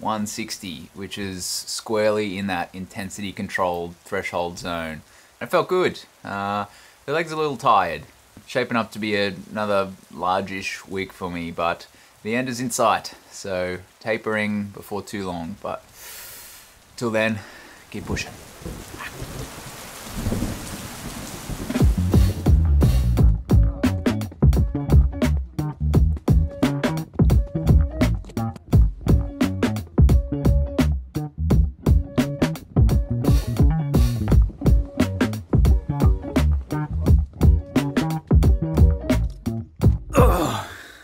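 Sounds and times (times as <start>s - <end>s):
rain on wooden slats: 0.0s - 24.7s, 32.4s - 41.0s
music with heavy bass drum: 21.7s - 40.3s
man sighing: 40.1s - 41.0s.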